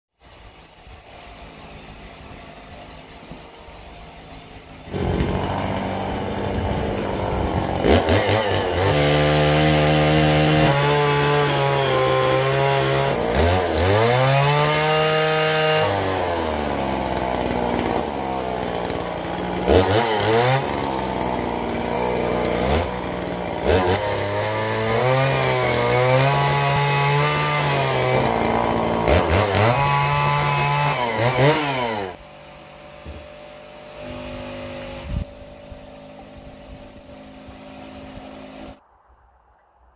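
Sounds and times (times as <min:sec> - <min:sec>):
chainsaw engine idling: 0:00.3 - 0:15.0, 0:15.9 - 0:38.8.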